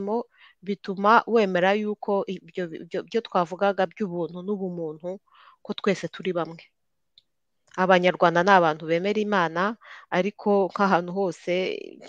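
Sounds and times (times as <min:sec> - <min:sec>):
person talking: 0:00.0 - 0:06.6, 0:07.8 - 0:12.0.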